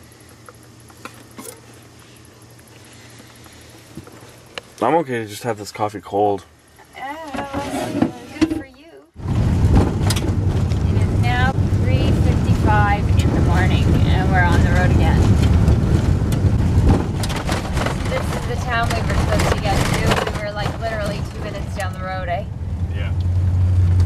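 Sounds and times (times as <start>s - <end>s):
tyres and engine rumble on gravel: 0.0s - 24.0s.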